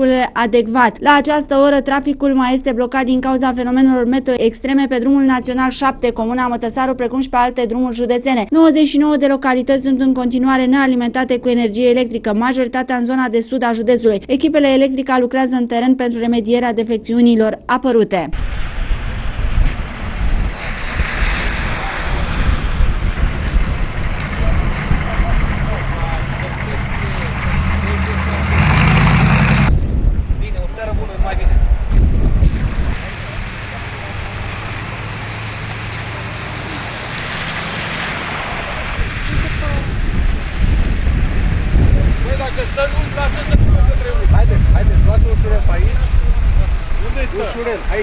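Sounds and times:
wind on microphone: 18.4s - 35.5s, 36.8s - 48.0s
car engines rumbling: 18.4s - 48.0s
faint voices: 23.7s - 29.2s.

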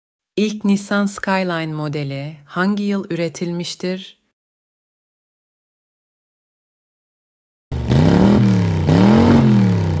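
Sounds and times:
car engine revving: 7.7s - 10.0s.

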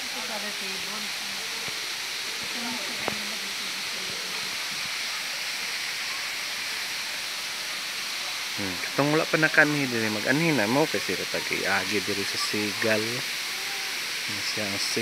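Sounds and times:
waterfall rushing: 0.0s - 15.0s.

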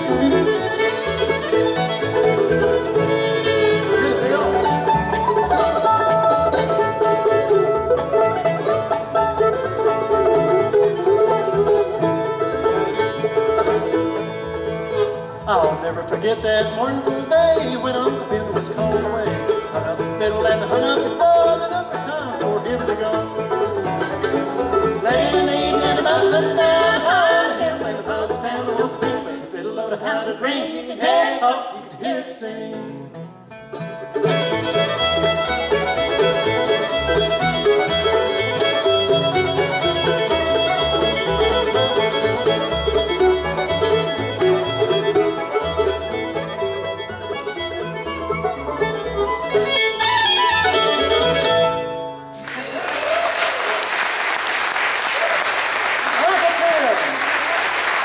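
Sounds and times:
fiddle: 0.0s - 32.0s, 33.0s - 53.2s
banjo: 0.0s - 52.6s
acoustic guitar: 0.0s - 52.7s
upright bass: 0.0s - 52.7s
mandolin: 0.0s - 53.2s.

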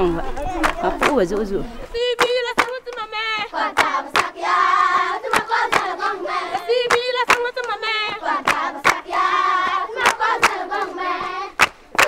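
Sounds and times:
sharp hand claps: 0.6s - 1.4s, 2.2s - 4.3s, 5.3s - 5.9s, 6.8s - 10.6s, 11.6s - 12.0s
children singing together: 1.9s - 11.7s.

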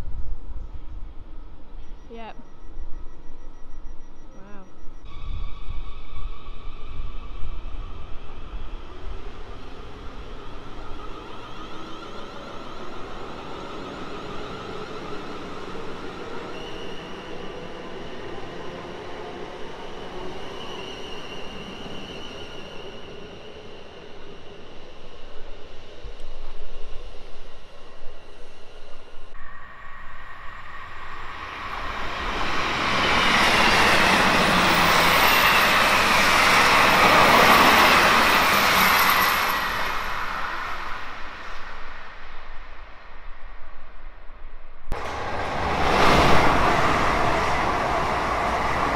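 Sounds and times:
passing train wheel and air rush: 5.1s - 43.7s, 44.9s - 48.9s.

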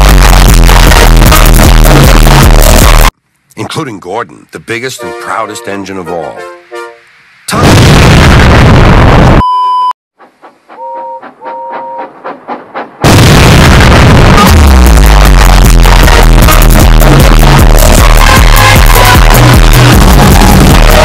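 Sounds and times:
distorted bass-heavy music: 0.0s - 3.1s, 13.0s - 21.0s
loud distorted noise blast: 0.0s - 3.1s, 7.5s - 9.4s, 13.0s - 21.0s
explosion effect: 7.5s - 9.5s, 13.0s - 21.0s
short beeps: 9.4s - 9.9s.

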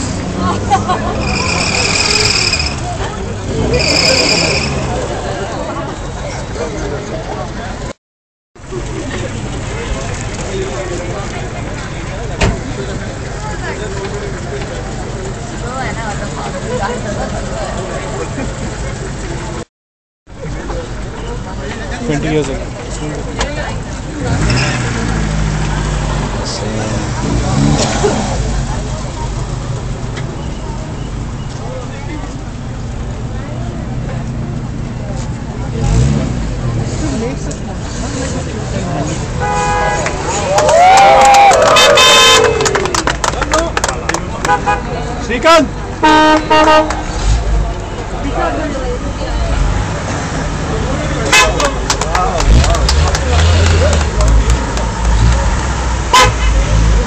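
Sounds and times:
car engines idling: 0.0s - 7.9s, 8.6s - 19.6s, 20.3s - 41.0s, 41.8s - 57.0s
chatter of voices: 0.0s - 8.0s, 8.6s - 19.6s, 20.3s - 57.0s.

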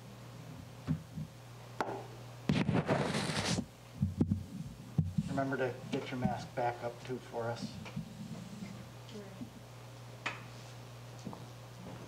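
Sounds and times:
steady low hum: 0.0s - 12.0s
soft low thumps: 4.0s - 5.3s.

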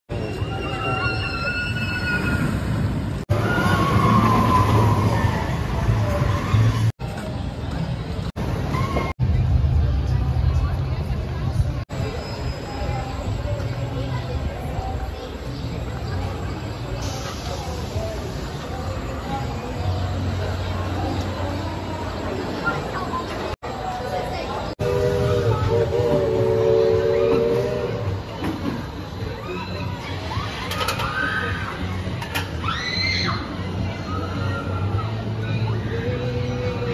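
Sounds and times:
roller coaster train rumbling on track: 0.1s - 36.9s.

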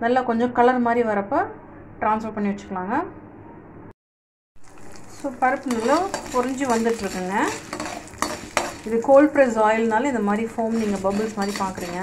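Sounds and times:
oil sizzling in a pan: 4.6s - 12.0s
spatula scraping and squeaking on pan: 4.6s - 12.0s.

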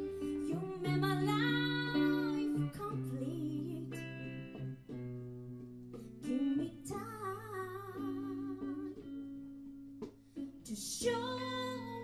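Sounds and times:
woman singing: 0.0s - 4.8s, 6.0s - 9.6s, 10.4s - 12.0s
guitar playing: 0.0s - 12.0s.

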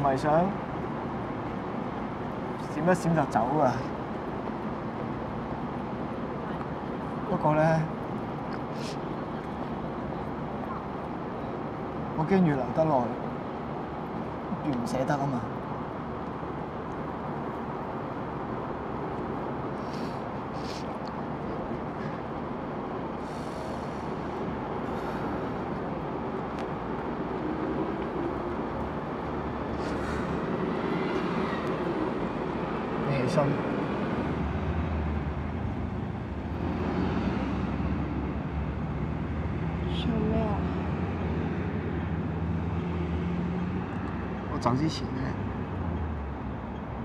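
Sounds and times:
city traffic noise: 0.0s - 47.0s
low engine drone: 19.7s - 36.7s.

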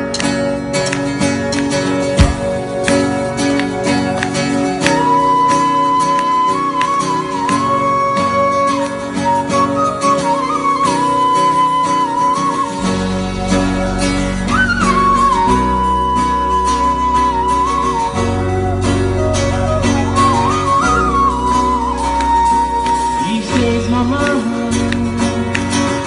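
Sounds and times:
heavy bass line: 0.0s - 4.2s
acoustic guitar: 0.0s - 26.0s
flute-like lead melody: 0.0s - 26.0s.

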